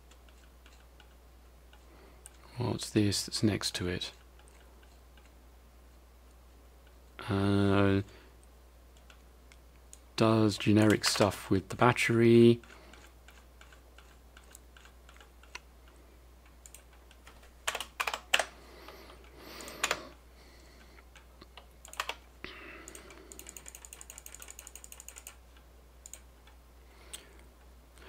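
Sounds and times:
computer keyboard keystrokes: 16.6s - 18.5s, 21.1s - 22.2s, 22.9s - 25.4s
rapid ticking: 22.8s - 26.3s.

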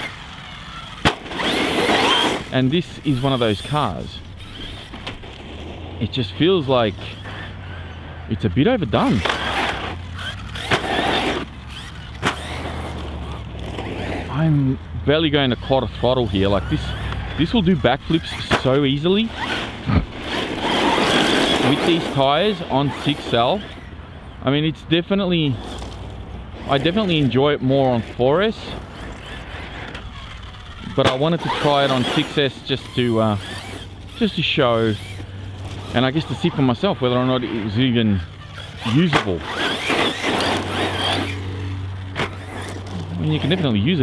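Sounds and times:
tyres spraying dirt: 0.0s - 23.8s, 24.6s - 44.0s
electric rc buggy running: 0.0s - 44.0s.

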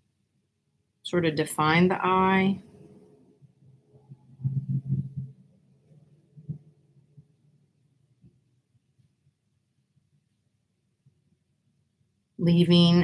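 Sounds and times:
soft low thuds: 4.1s - 5.4s.

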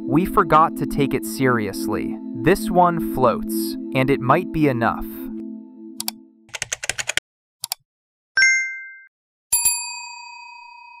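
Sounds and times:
short clicks: 7.6s - 7.8s
bell-like notification chime: 8.4s - 11.0s.

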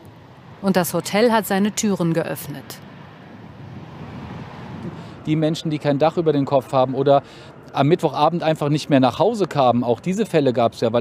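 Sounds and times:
wind rumble: 0.0s - 9.9s
distant traffic: 0.0s - 11.0s.

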